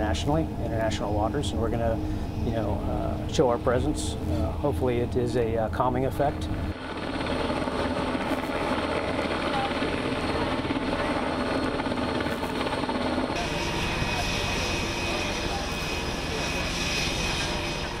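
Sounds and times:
helicopter rotor and turbine noise: 0.0 - 18.0
thin high whine: 7.9 - 18.0.

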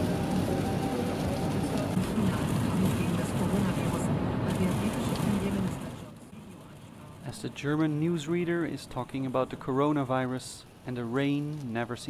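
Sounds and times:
road and rain noise: 0.0 - 12.0
newsreader on car radio: 1.0 - 12.0.

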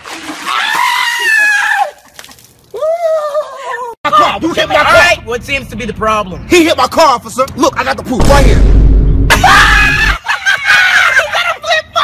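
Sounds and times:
ice water splashing: 0.0 - 1.0
man screaming: 9.3 - 10.2.

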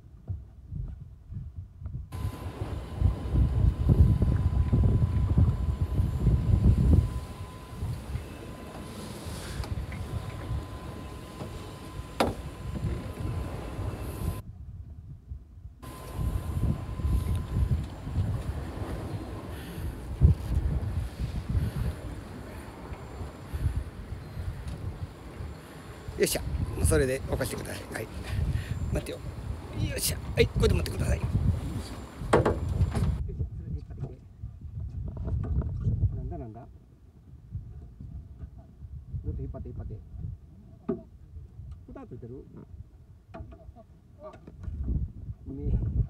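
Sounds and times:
wind buffeting microphone: 0.0 - 43.4, 44.3 - 46.0
sea and boat noise: 2.1 - 14.5, 15.8 - 46.0
faint steady high tone: 2.2 - 14.4, 15.8 - 18.2.

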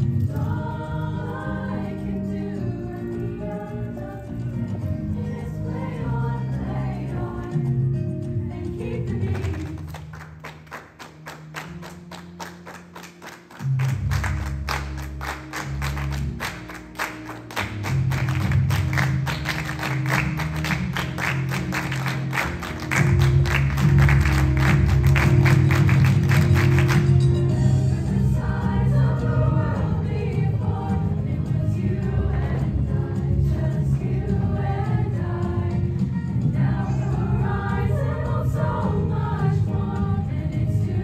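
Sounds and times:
choir singing: 0.0 - 9.9, 24.8 - 41.0
music with quick steady beat: 11.7 - 41.0
deep bass notes: 17.7 - 41.0.

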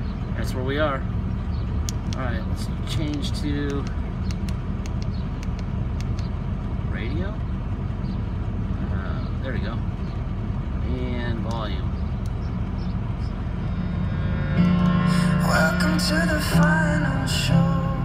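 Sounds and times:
diesel engine idling: 0.0 - 18.0
button clicks: 14.6 - 15.0
music on radio: 14.6 - 18.0.

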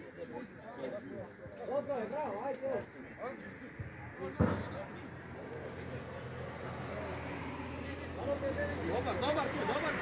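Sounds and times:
faint distant voices: 0.0 - 10.0
sharp thump: 4.4 - 5.0.

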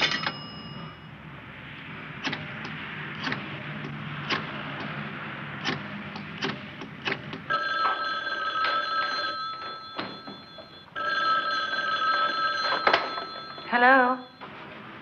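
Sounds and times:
telephone bell ringing: 0.0 - 1.2, 7.5 - 14.8.

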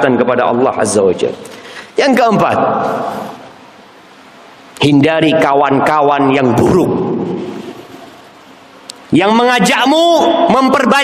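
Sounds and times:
man preaching: 0.0 - 1.4, 2.0 - 3.4, 4.8 - 7.6, 9.1 - 11.0
faint steady hiss: 0.0 - 10.5.

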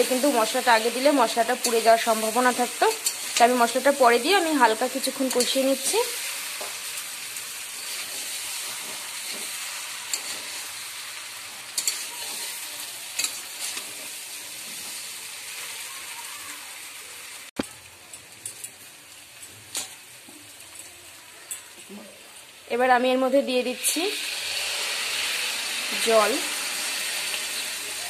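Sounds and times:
metal spatula scraping a pan: 0.0 - 15.8
potatoes sizzling in oil: 0.0 - 28.0.

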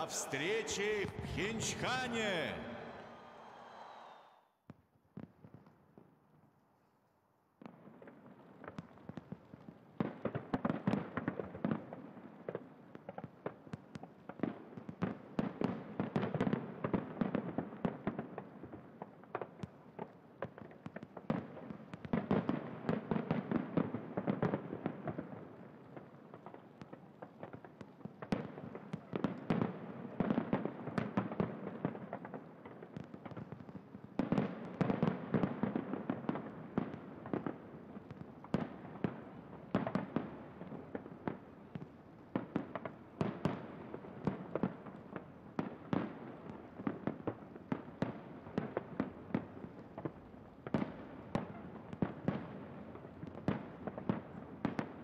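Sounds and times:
fireworks bangs and crackles: 0.0 - 6.1, 7.6 - 55.0.

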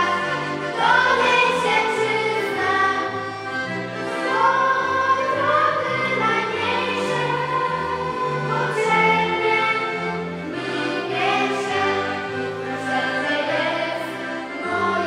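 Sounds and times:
accordions: 0.0 - 15.0
girls' choir singing: 0.0 - 15.0.

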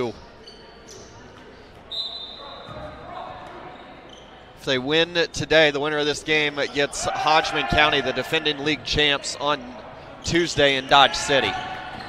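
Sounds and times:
murmur of crowd chatter: 0.0 - 12.0
faint high squeaks: 0.4 - 4.5.

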